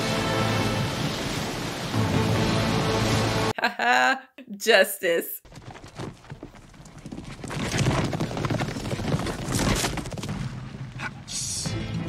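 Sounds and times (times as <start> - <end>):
horse hooves galloping: 5.5 - 11.1.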